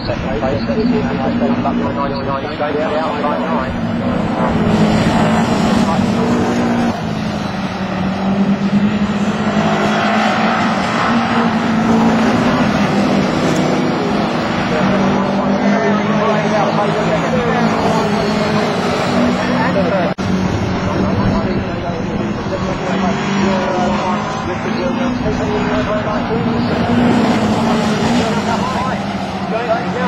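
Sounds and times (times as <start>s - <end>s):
race car engines: 0.0s - 30.0s.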